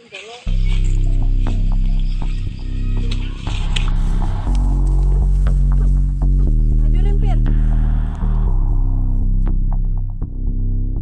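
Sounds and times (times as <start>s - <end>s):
deep droning music: 0.5s - 11.0s.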